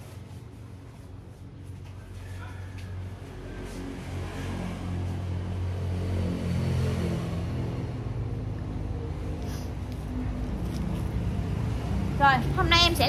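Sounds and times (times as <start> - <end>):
vehicle engine rumble: 6.7 - 13.0.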